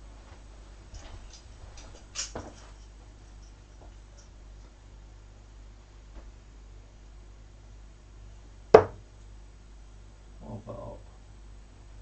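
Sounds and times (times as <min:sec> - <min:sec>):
dart striking dartboard: 0:08.8 - 0:09.0.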